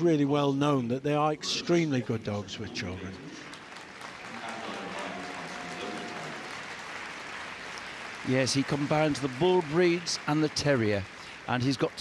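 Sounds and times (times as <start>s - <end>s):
crowd applauding: 2.3s - 12.0s.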